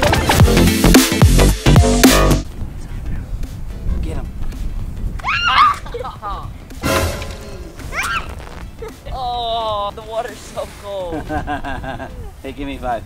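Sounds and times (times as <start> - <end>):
children squealing and shouting: 5.2 - 6.4, 7.8 - 8.5.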